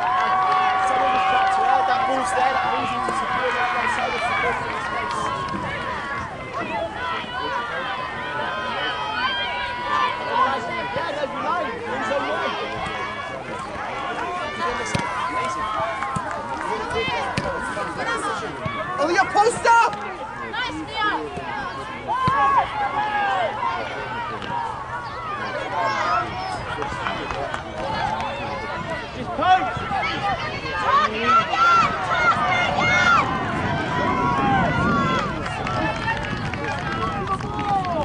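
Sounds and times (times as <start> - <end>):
many voices calling and shouting: 0.0 - 38.0.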